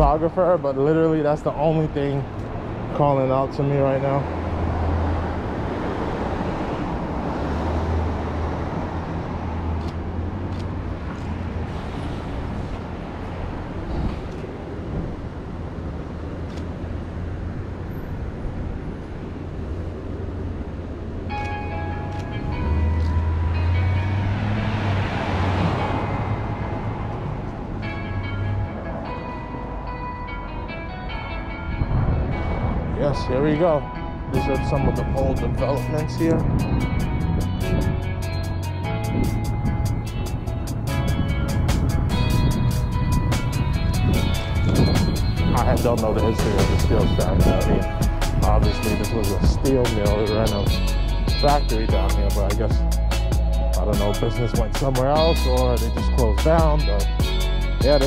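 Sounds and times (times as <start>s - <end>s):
passing traffic: 0.0s - 58.0s
vehicle passing: 0.0s - 58.0s
wind rumble on microphone: 4.4s - 21.2s, 31.6s - 51.3s
music with held tones: 21.3s - 58.0s.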